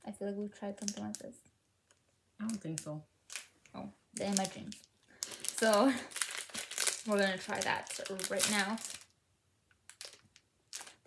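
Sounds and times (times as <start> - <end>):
snack wrapper crackling: 1.9 - 3.5, 4.2 - 9.1, 9.8 - 11.0
wrapper rustle: 4.2 - 9.1, 9.9 - 11.0.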